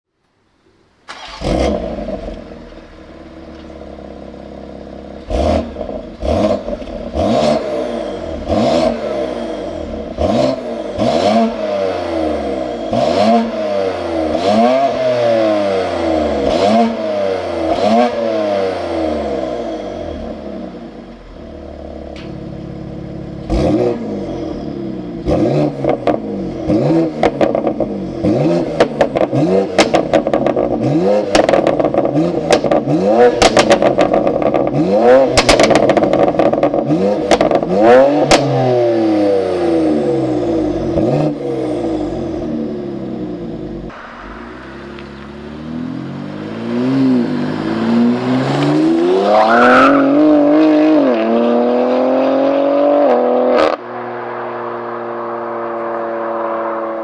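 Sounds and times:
car engine revving: 1.1s - 57.0s
exhaust cracks: 28.7s - 38.6s, 43.6s - 49.5s.

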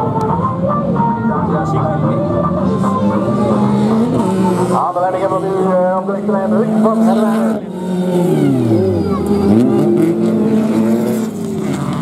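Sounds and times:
race car engines at high revs: 0.0s - 12.0s.

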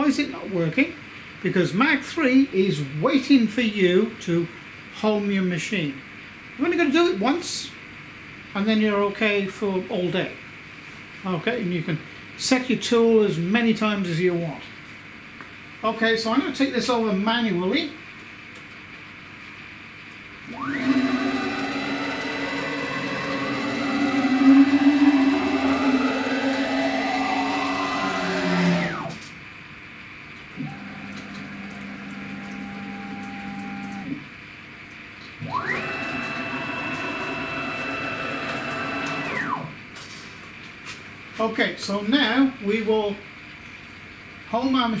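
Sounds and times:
stepper motors whining: 20.5s - 29.3s, 35.4s - 39.8s.

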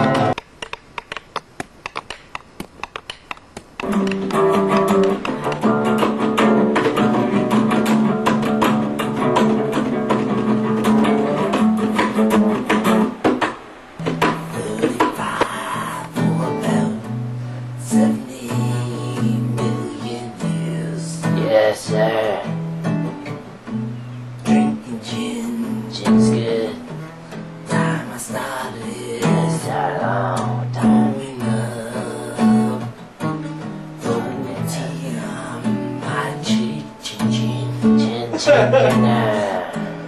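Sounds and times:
acoustic guitar strumming: 0.0s - 40.0s.

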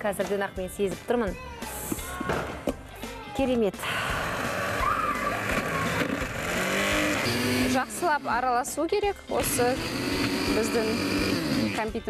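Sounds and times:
blender grinding nuts: 3.9s - 8.3s, 9.4s - 11.9s.

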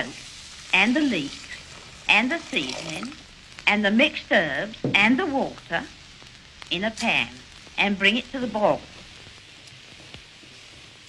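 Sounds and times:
pan heating with faint hiss: 0.0s - 11.0s.

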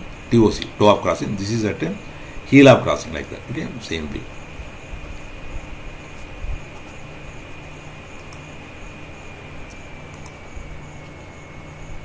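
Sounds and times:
room hum and hiss: 0.0s - 12.0s
thin high whine: 0.0s - 12.0s
faint clicks: 8.2s - 8.4s, 9.6s - 10.4s.

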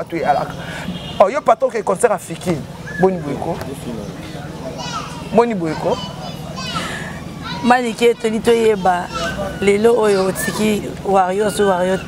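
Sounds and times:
children chattering: 0.0s - 1.2s, 2.4s - 12.0s.

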